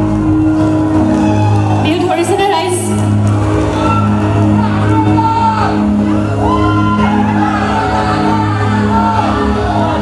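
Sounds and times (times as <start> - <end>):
shouting: 3.7 - 10.0.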